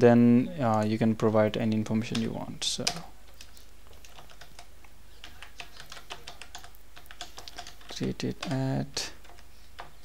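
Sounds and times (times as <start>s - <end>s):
computer keyboard typing: 2.0s - 10.0s.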